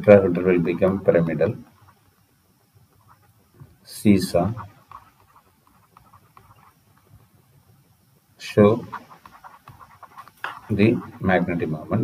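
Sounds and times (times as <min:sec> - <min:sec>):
man speaking: 0:10.6 - 0:12.0.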